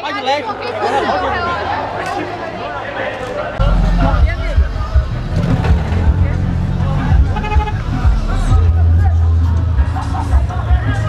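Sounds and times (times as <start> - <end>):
people talking in crowd: 0.0 - 11.0
cars driving past rumbling: 3.6 - 8.8.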